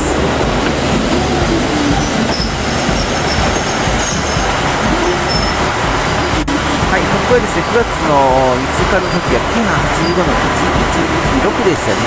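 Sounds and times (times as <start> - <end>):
railcars rumbling past: 0.0 - 12.0
faint high wheel squeal: 1.8 - 6.8, 8.8 - 10.4.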